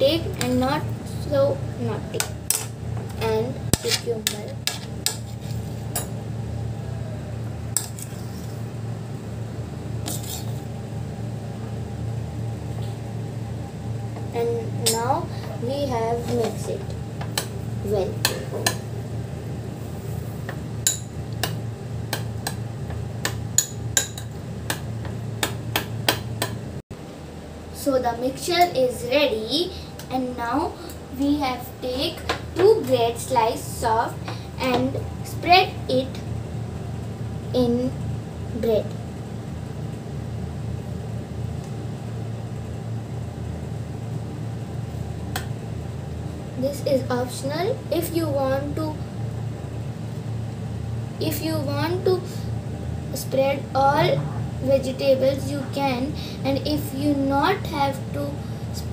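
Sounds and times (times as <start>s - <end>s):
steady low hum: 0.0s - 58.9s.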